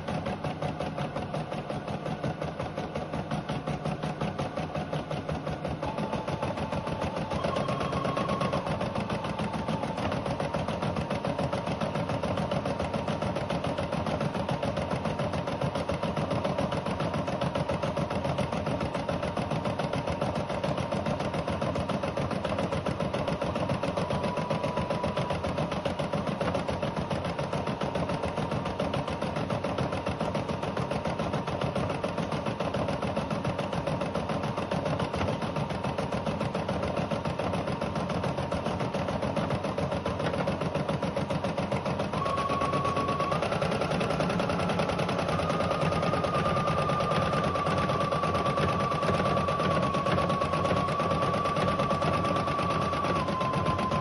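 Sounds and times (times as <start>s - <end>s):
embroidery machine stitching: 0.0s - 54.0s.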